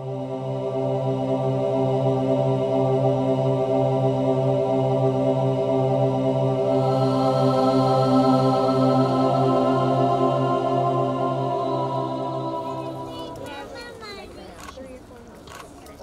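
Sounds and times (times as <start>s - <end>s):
bagpipe drones: 0.0s - 14.6s
bagpipe chanter tune: 6.8s - 14.0s.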